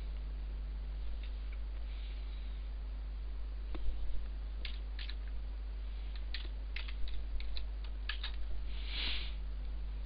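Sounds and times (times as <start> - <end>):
low steady hum: 0.0 - 10.0
keyboard keys clicking: 6.2 - 8.4.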